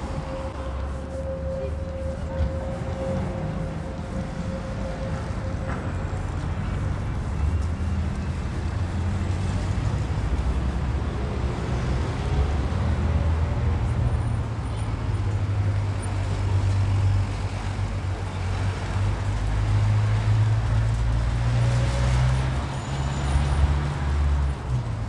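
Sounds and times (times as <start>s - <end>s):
street traffic rumble: 0.0s - 25.0s.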